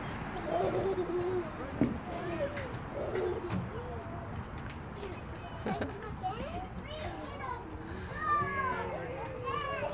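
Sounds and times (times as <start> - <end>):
children calling and chattering: 0.0 - 9.9.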